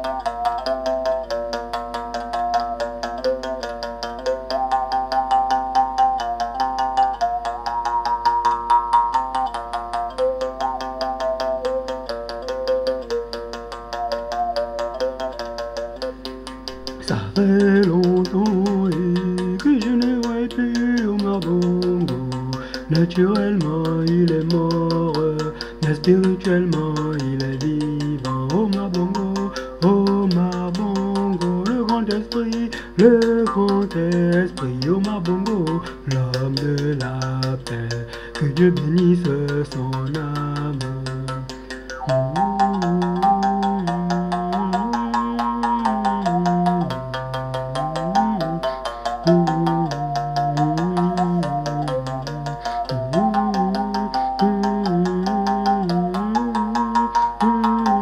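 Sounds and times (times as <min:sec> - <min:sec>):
mouth bow melody: 0:00.0 - 0:58.0.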